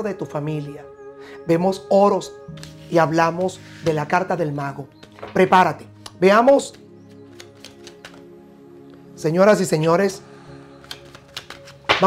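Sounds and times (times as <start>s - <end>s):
quiet background music: 0.0s - 12.0s
cards shuffled by hand: 2.5s - 3.0s, 6.6s - 8.3s, 10.8s - 12.0s.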